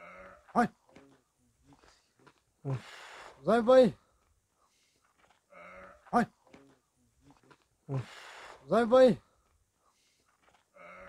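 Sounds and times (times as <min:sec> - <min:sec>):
faint raspy breathy sound: 0:01.2 - 0:03.5, 0:07.9 - 0:08.7, 0:09.3 - 0:11.0.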